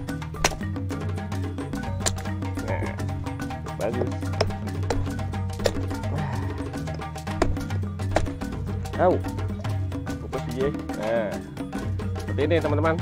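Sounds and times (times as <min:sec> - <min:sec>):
background music with bass line: 0:00.0 - 0:13.0
blade knocking on coconut shell: 0:00.4 - 0:00.7, 0:03.9 - 0:06.0, 0:07.2 - 0:08.5.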